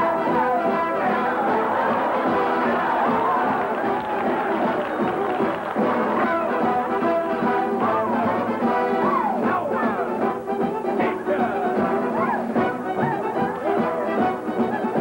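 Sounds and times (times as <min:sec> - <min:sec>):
big band dance music: 0:00.0 - 0:15.0.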